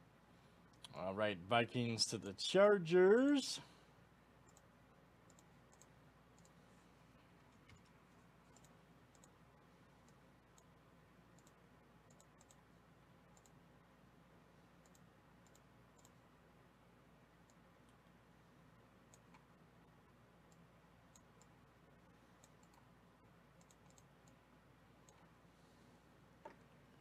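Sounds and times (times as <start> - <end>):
computer mouse clicks: 4.4 - 6.6, 7.5 - 9.4, 10.0 - 10.7, 11.3 - 12.6, 13.3 - 13.6, 14.8 - 16.2, 17.4 - 18.1, 19.1 - 19.5, 20.5 - 21.6, 22.4 - 22.9, 23.6 - 24.4, 25.0 - 25.3.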